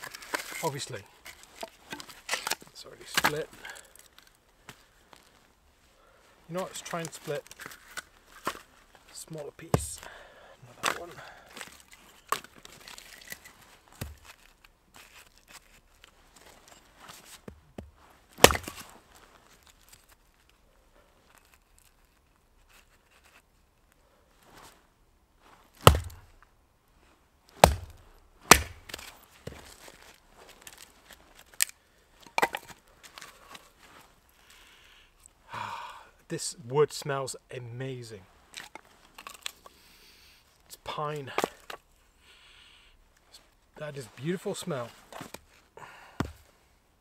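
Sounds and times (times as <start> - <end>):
axe chopping wood: 3.2 - 3.5, 9.7 - 10.1, 14.0 - 14.3, 17.8 - 18.8, 25.8 - 26.3, 27.6 - 29.6, 46.2 - 46.4.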